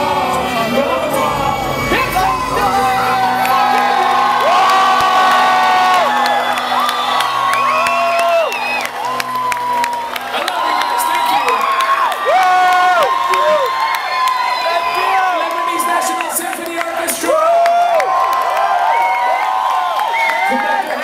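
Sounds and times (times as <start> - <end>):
crowd cheering and whooping: 0.0 - 21.0
people clapping: 2.9 - 21.0
whistles: 6.2 - 9.0.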